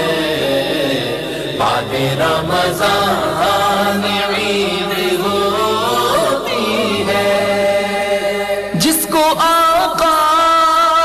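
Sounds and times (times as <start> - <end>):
person chanting devotional song: 0.0 - 11.0.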